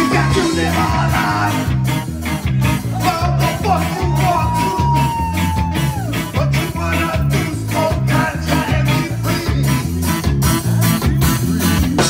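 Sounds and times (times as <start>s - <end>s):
guitar: 0.0s - 12.0s
rhythmic bass line: 0.0s - 12.0s.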